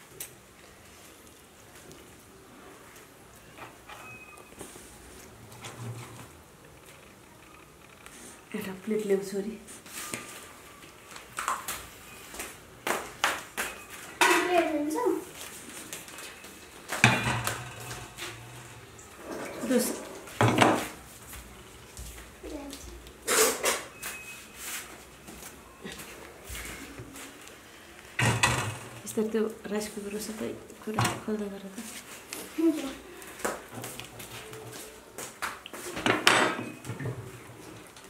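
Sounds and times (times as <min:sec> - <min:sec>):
people talking: 0:08.5 - 0:09.7, 0:14.2 - 0:15.3, 0:19.6 - 0:20.0, 0:29.1 - 0:32.0, 0:32.6 - 0:33.0.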